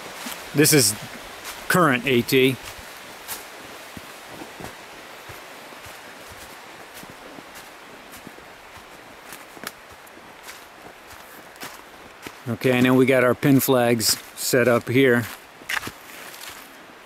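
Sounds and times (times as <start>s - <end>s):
outdoor hiss: 0.0s - 17.0s
footsteps on dry leaves: 0.1s - 13.2s, 15.2s - 16.8s.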